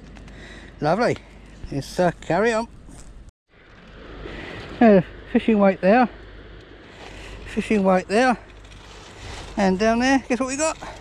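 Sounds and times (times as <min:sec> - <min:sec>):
outdoor background noise: 0:00.0 - 0:11.0
man saying uh: 0:09.8 - 0:10.9.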